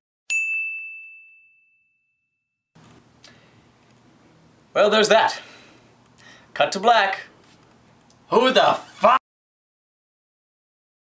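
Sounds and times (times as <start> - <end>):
bell-like ding: 0.3 - 2.6.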